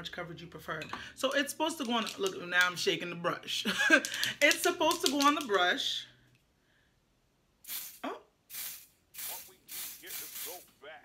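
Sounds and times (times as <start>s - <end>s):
short hissing sprays: 7.6s - 10.7s.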